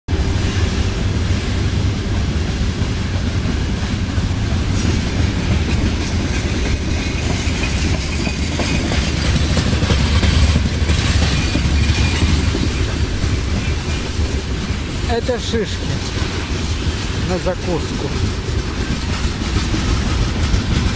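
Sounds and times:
train wheels on rails: 0.1s - 20.9s.

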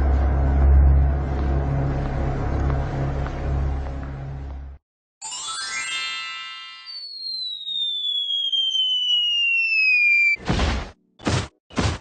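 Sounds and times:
low rumbling noise: 0.0s - 4.8s
chiming upward sweep: 5.2s - 10.4s
long falling whistle: 6.7s - 10.4s.

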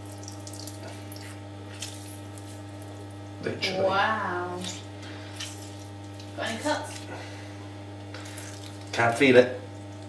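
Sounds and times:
juice dripping into a bowl: 0.0s - 3.4s, 4.8s - 6.4s, 8.0s - 10.0s
steady low hum: 0.0s - 10.0s.

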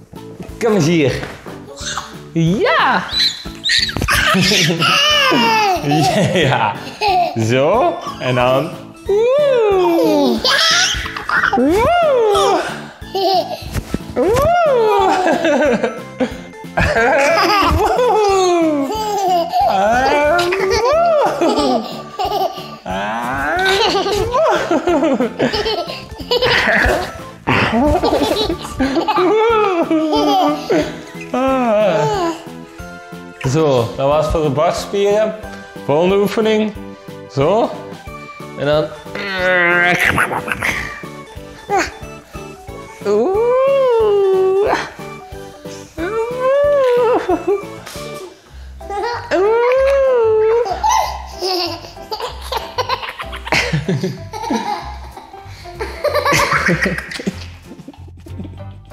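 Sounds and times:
background music: 0.0s - 58.9s
toddler laughing and giggling: 1.8s - 2.2s, 3.2s - 7.4s, 9.8s - 16.0s, 16.8s - 32.5s, 40.0s - 41.1s, 41.7s - 42.1s, 48.9s - 58.0s.

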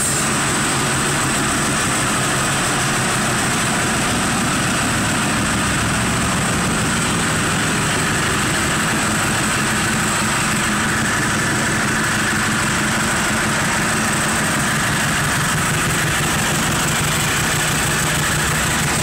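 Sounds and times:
motorcycle engines idling: 0.0s - 19.0s.

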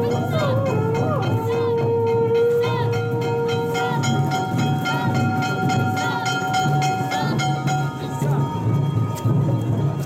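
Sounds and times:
drum and bell strikes: 0.0s - 10.0s.

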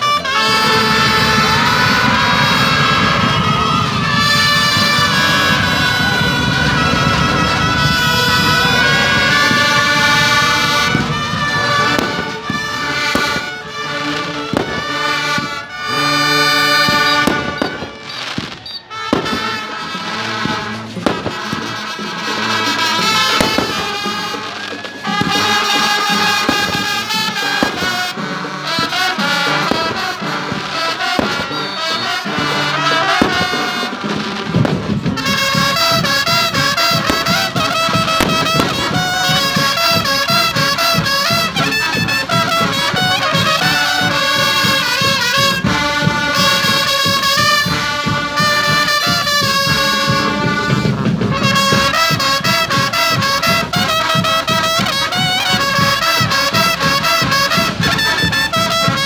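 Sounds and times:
fireworks cracking and banging: 0.0s - 59.0s
marching band playing: 0.0s - 59.0s.

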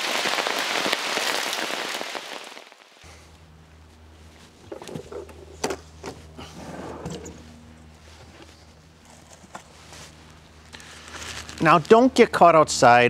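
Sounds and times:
soft rustling: 6.7s - 12.0s.

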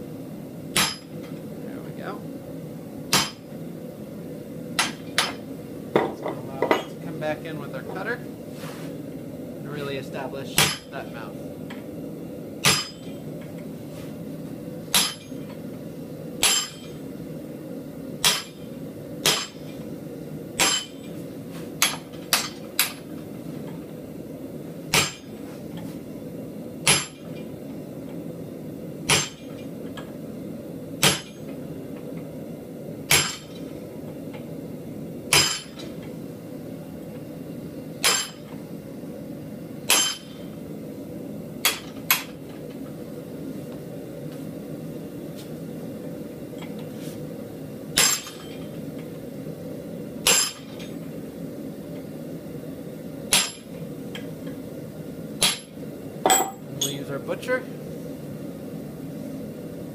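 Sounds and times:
steady low hum: 0.0s - 59.9s
hammer striking metal cutter: 0.8s - 1.2s, 3.1s - 3.5s, 4.8s - 5.4s, 10.6s - 10.9s, 12.6s - 13.2s, 14.9s - 15.4s, 16.4s - 17.0s, 18.2s - 18.6s, 19.2s - 19.7s, 20.6s - 21.1s, 24.9s - 25.3s, 26.8s - 27.3s, 29.1s - 29.5s, 31.0s - 31.4s, 33.1s - 33.6s, 35.3s - 35.9s, 38.0s - 38.5s, 39.9s - 40.4s, 48.0s - 48.6s, 50.2s - 50.8s, 53.3s - 53.7s, 55.4s - 55.7s, 56.3s - 57.0s.

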